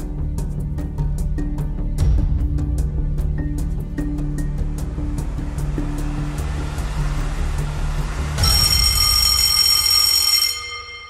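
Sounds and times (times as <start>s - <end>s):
ticking countdown music: 8.2s - 10.5s
bright ringing time-up signal: 8.4s - 11.0s.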